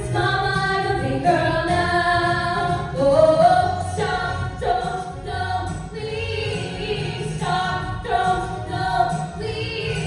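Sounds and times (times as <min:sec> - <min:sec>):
women singing into microphones: 0:00.0 - 0:10.0.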